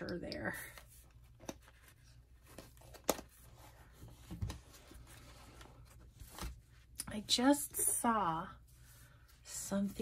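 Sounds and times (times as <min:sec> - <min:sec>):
soft paper rustle: 0:00.7 - 0:07.0
journal handling: 0:01.2 - 0:06.7.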